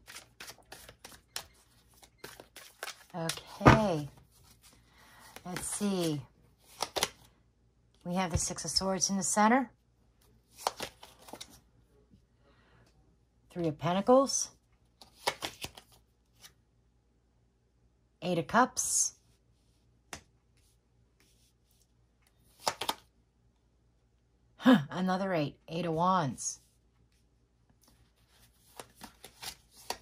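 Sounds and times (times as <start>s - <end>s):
cards snapping and sliding: 0.0s - 3.1s, 6.7s - 7.2s, 10.5s - 11.5s, 15.0s - 16.0s, 22.5s - 23.1s, 28.6s - 30.0s.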